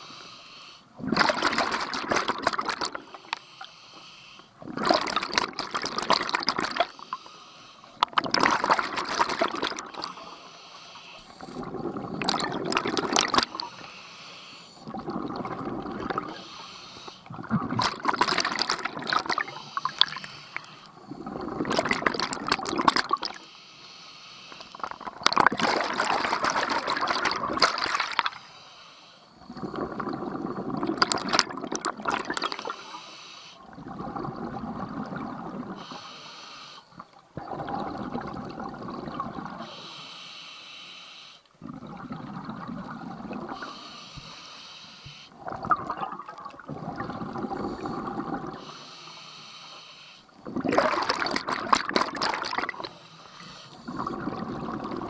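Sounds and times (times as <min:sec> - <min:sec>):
diver inhaling through regulator: 0:00.0 - 0:01.0, 0:03.0 - 0:04.6, 0:06.9 - 0:08.0, 0:09.8 - 0:12.4, 0:13.3 - 0:17.4, 0:19.4 - 0:21.8, 0:23.3 - 0:25.2, 0:32.4 - 0:34.3, 0:35.6 - 0:37.0, 0:39.5 - 0:41.5, 0:43.5 - 0:45.4, 0:46.8 - 0:50.4, 0:52.6 - 0:55.0
exhaled bubbles rushing: 0:01.0 - 0:03.2, 0:04.6 - 0:06.9, 0:08.1 - 0:10.2, 0:11.4 - 0:13.8, 0:14.8 - 0:16.4, 0:17.3 - 0:20.2, 0:21.1 - 0:23.4, 0:25.0 - 0:28.4, 0:29.5 - 0:32.7, 0:33.7 - 0:35.8, 0:37.4 - 0:39.6, 0:41.6 - 0:43.7, 0:45.4 - 0:48.7, 0:50.4 - 0:52.9, 0:53.8 - 0:55.0.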